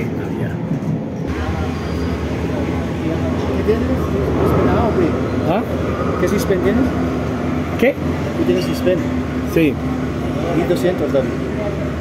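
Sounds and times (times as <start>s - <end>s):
low mechanical hum of machinery: 0.0s - 12.0s
people talking: 1.2s - 12.0s.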